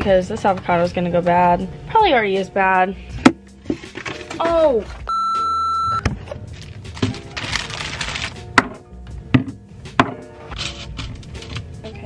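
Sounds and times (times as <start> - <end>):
high electronic beep: 5.1 - 6.0
background music with beat: 8.4 - 12.0.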